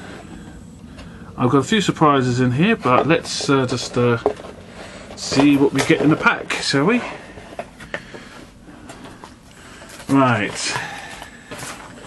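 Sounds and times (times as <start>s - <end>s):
hands handling cardboard box: 2.7s - 12.0s.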